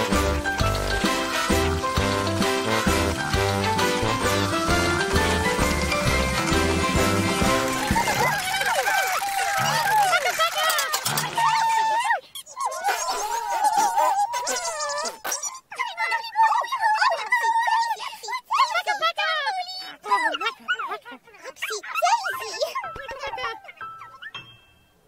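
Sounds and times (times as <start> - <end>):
light children's music: 0.0 - 10.1, 22.4 - 25.0
squeaky puppet voices babbling: 7.6 - 24.4.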